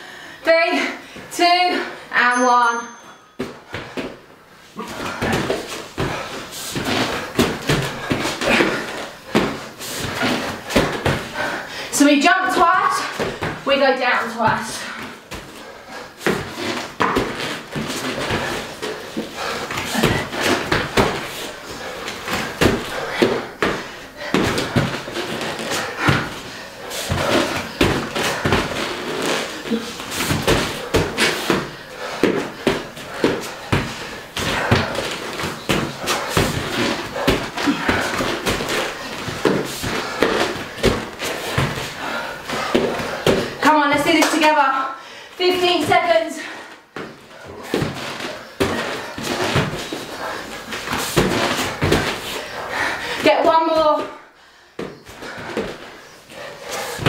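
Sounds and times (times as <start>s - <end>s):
feet landing thuds: 3.4s - 11.7s, 14.4s - 44.6s, 46.9s - 54.2s, 54.8s - 57.0s.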